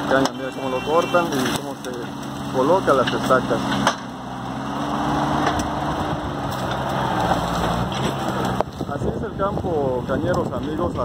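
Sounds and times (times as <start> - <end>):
farm machinery engine running: 0.0 - 11.0.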